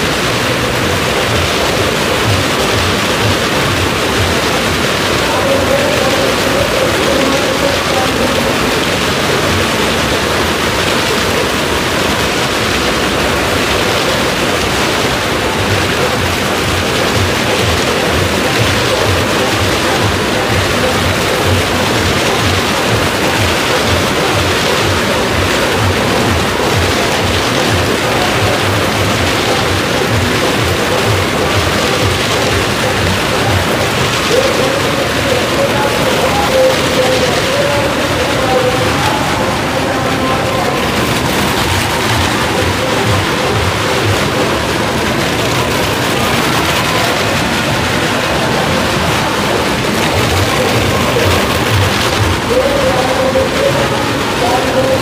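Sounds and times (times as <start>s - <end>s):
car engines roaring in echoing drum: 0.0s - 55.0s.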